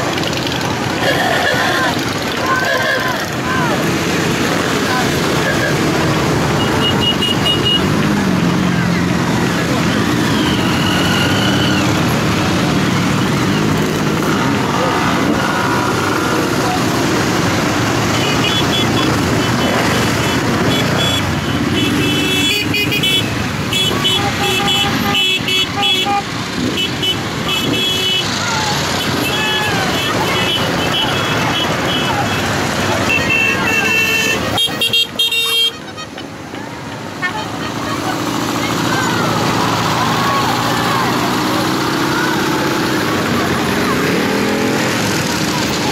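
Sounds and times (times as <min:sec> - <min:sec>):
motorcycle engines riding past: 0:00.0 - 0:45.9
horns beeping short toots: 0:18.2 - 0:35.9.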